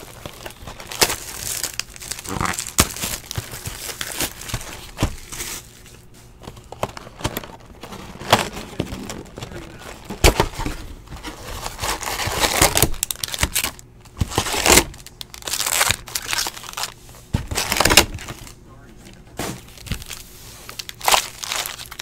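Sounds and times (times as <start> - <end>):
wrappers crinkling and rustling: 0.0 - 22.0.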